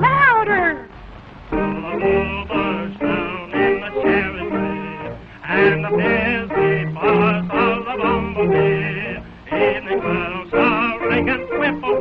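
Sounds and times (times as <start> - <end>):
person singing: 1.6 - 12.0.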